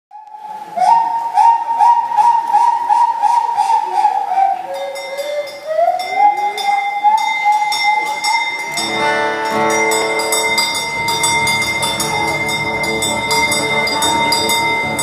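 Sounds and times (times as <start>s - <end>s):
harmonica whistle-like tone: 0.2s - 15.0s
harmonica train imitation: 1.8s - 15.0s.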